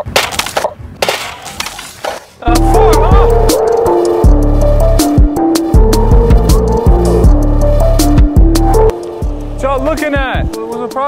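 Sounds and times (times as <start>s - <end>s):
music with heavy bass beat: 2.5s - 10.6s.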